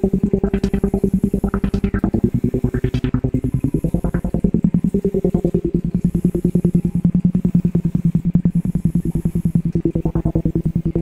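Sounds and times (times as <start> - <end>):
fast even pulse: 0.0 - 6.6
low steady drone: 0.0 - 11.0.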